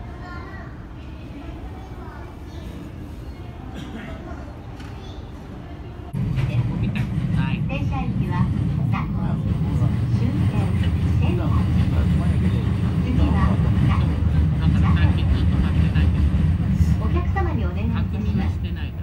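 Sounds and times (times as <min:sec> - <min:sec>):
voices talking: 0:00.0 - 0:19.0.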